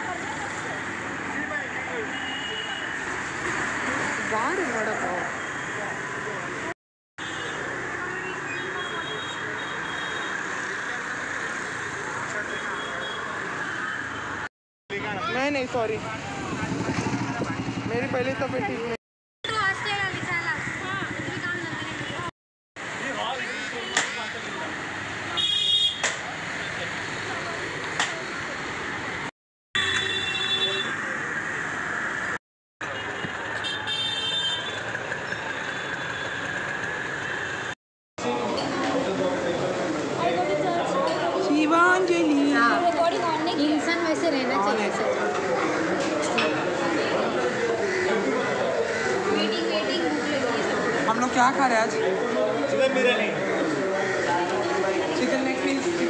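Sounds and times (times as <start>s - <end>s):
scooters and rickshaws traffic: 0.0s - 56.0s
high-pitched vehicle horn: 29.8s - 30.9s.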